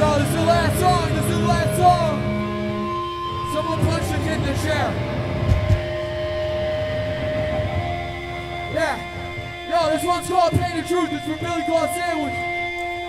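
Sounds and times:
guitar amplifier feedback tones: 0.0 - 13.0
low thumps: 3.4 - 9.7.

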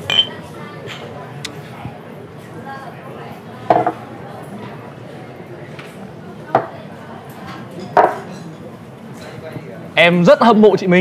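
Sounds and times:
murmur of busy eatery: 0.0 - 11.0.

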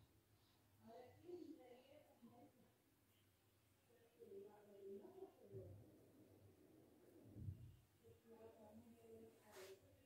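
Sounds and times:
faint low-pitched sounds: 0.0 - 10.0.

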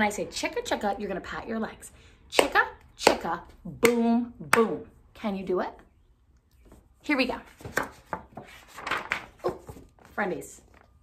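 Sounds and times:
paper pages rustling: 7.5 - 11.0.

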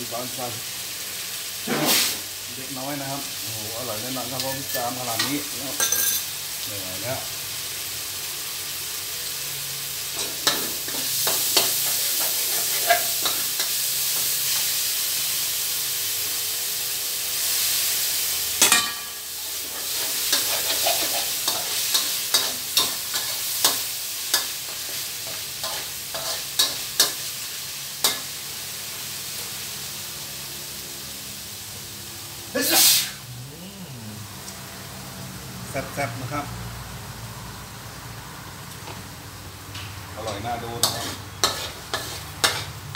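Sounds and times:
meat sizzling in a wok: 0.0 - 42.9
metal spatula scraping a wok: 10.2 - 14.1, 18.6 - 27.3, 40.2 - 42.9.

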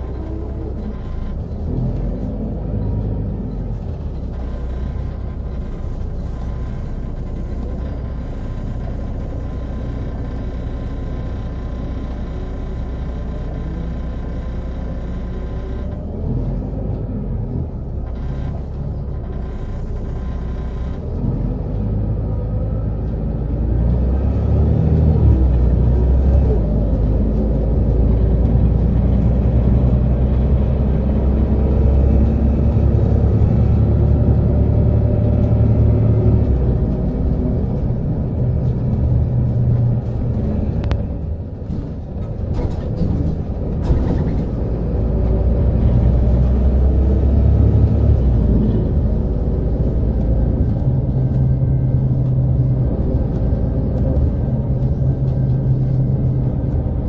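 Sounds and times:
bus diesel engine: 0.0 - 57.0.

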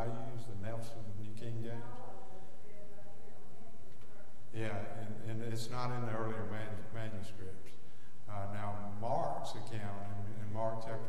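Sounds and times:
man preaching: 0.0 - 2.2, 4.5 - 11.0.

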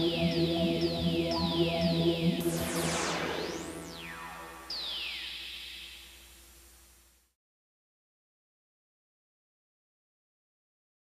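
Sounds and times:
synth jingle: 0.0 - 6.4
low hum: 0.0 - 7.1.

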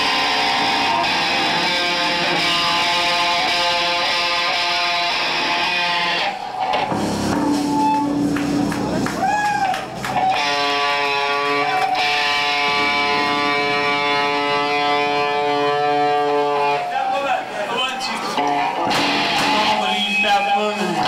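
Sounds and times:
distorted electric guitar chord: 0.0 - 7.3, 10.4 - 16.8
live rock band: 0.0 - 21.0.

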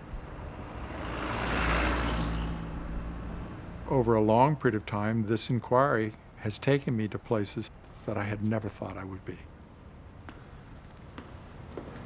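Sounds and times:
vehicle passing by: 0.0 - 4.3.

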